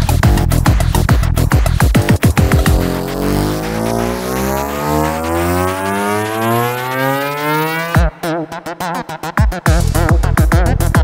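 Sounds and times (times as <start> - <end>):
psytrance beat: 0.0 - 11.0
rising synth tone: 2.0 - 9.2.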